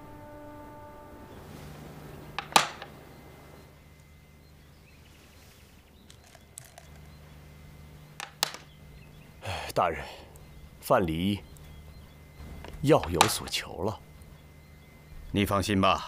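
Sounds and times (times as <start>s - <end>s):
held music notes: 0.0s - 4.8s
faint low hum: 0.0s - 16.0s
sharp clicks or knocks: 2.4s - 3.0s, 8.2s - 8.7s.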